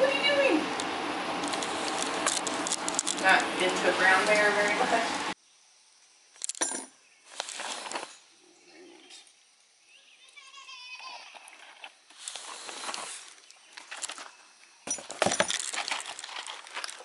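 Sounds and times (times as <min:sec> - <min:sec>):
cardboard packaging rustling: 0:12.2 - 0:17.0.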